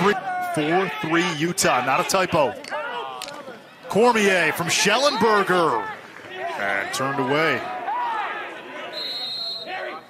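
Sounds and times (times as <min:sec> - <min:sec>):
men speaking and calling out: 0:00.0 - 0:10.0.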